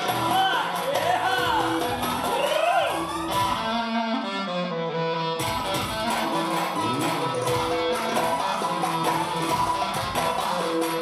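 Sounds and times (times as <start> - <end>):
clarinet melody: 2.9 - 11.0.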